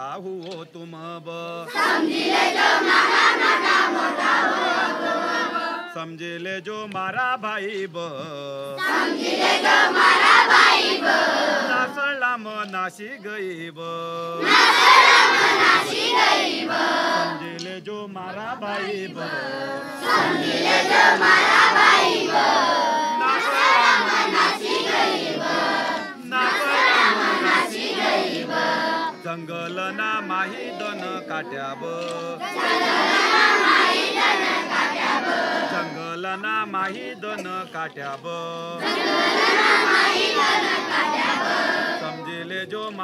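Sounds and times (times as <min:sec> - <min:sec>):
group singing in chorus: 0:00.0 - 0:43.0
children shouting together: 0:01.7 - 0:05.9, 0:19.7 - 0:29.2.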